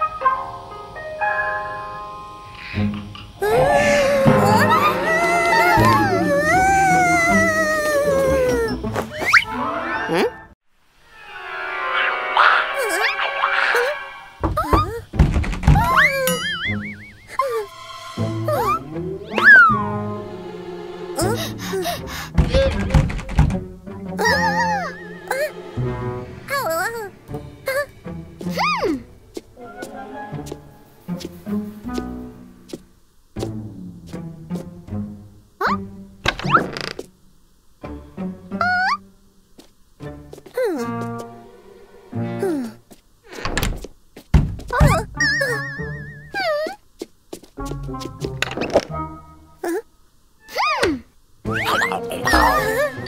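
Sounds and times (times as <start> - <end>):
background music: 0.0 - 14.4, 15.8 - 36.6, 37.8 - 42.9, 47.6 - 49.8, 51.4 - 53.0
warbling wail: 3.4 - 9.3, 15.8 - 21.9, 51.5 - 53.0
cartoon music: 3.4 - 10.4, 15.8 - 23.0, 24.2 - 25.8, 44.9 - 46.8, 51.5 - 53.0
heavy cartoon thuds: 14.4 - 16.2, 22.2 - 23.7, 43.5 - 45.2
warbling tone: 15.9 - 20.8
heavy thunk: 43.5 - 45.2.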